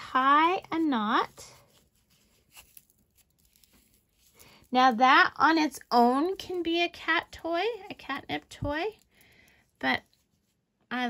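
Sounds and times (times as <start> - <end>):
fabric rustling: 0.2 - 4.9.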